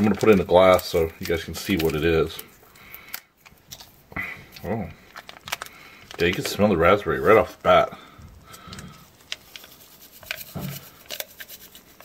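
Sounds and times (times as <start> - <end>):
pouch crinkling: 0.0 - 12.0.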